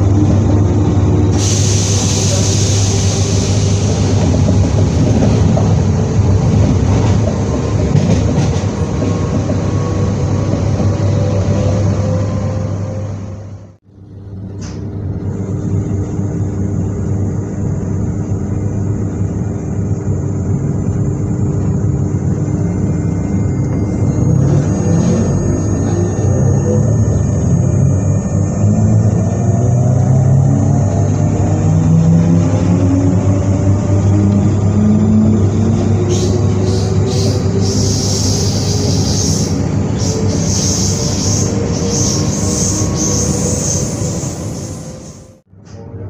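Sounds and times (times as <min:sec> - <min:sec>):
electric train humming: 0:00.0 - 0:46.0.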